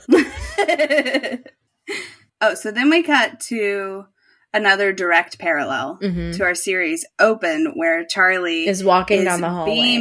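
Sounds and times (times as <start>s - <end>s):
woman laughing: 0.0s - 2.1s.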